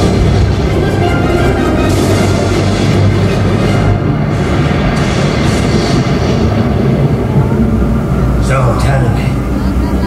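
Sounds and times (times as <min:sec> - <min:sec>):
low rumble over loudspeakers: 0:00.0 - 0:10.0.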